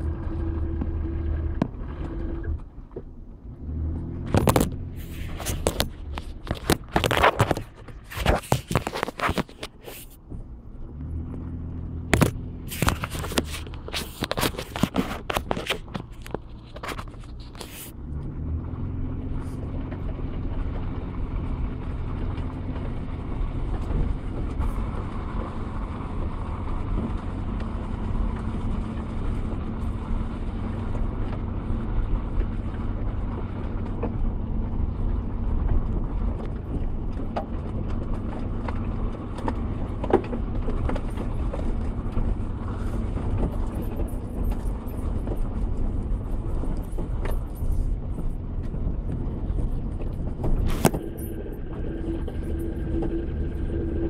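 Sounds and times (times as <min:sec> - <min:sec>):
tyre and suspension noise: 0:00.0 - 0:54.0
vehicle engine hum: 0:00.0 - 0:54.0.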